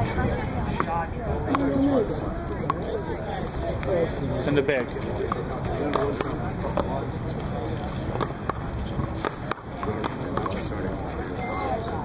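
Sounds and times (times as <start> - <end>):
outdoor background hum: 0.0 - 12.0
paddleball taps and clicks: 8.2 - 10.6.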